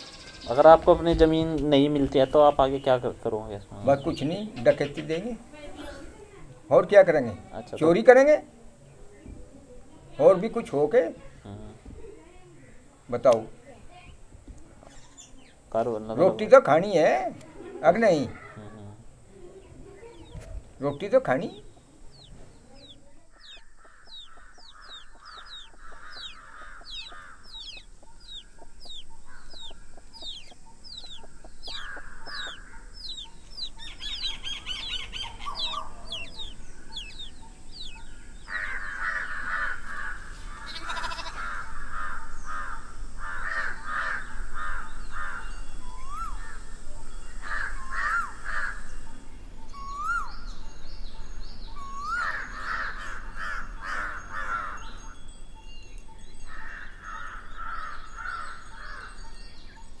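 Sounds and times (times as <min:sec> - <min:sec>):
birds chirping and calling: 0:00.0 - 1:00.0.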